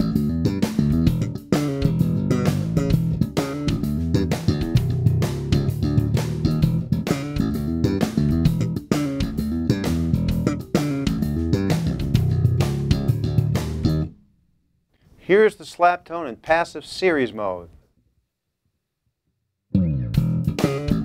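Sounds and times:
slap electric bass groove: 0.0s - 14.2s, 19.7s - 21.0s.

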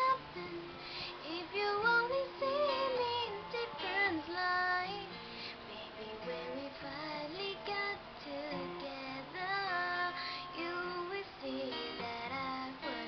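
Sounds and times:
plucked acoustic guitar: 0.0s - 13.0s
woman singing: 0.0s - 13.0s.

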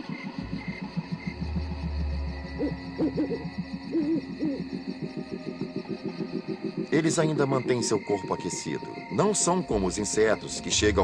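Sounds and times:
fast low pulsing: 0.3s - 6.9s
low rumble: 0.4s - 4.0s
owl hooting: 0.4s - 7.2s.

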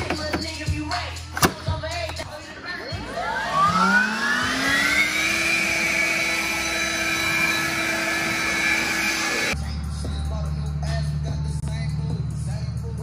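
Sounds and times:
leaf blower whine and air rush: 3.0s - 9.6s.

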